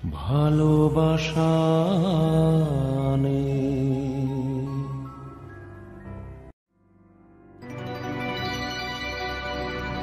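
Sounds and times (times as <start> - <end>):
musical accompaniment: 4.0 - 10.0.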